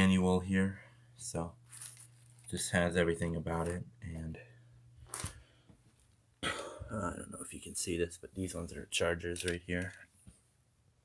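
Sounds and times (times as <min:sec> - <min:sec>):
man speaking: 0:00.0 - 0:01.6, 0:02.5 - 0:04.5, 0:06.9 - 0:10.0
man coughing: 0:06.4 - 0:07.2.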